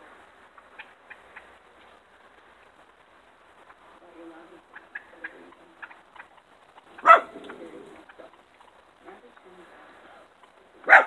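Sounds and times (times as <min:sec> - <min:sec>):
turkeys clucking and purring: 0:00.5 - 0:02.0, 0:03.5 - 0:09.4.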